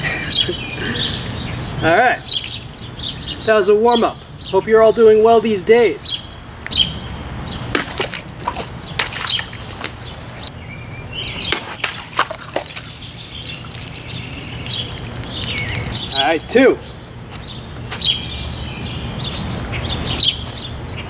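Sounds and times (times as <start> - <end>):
birds chirping: 0.0 - 21.0
insect chirring: 0.0 - 21.0
knife slashing plastic bottle: 7.8 - 10.0
water spraying: 12.0 - 15.9.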